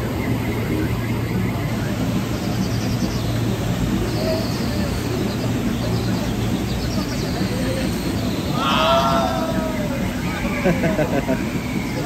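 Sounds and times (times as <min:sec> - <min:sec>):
water rushing and churning: 0:00.0 - 0:12.0.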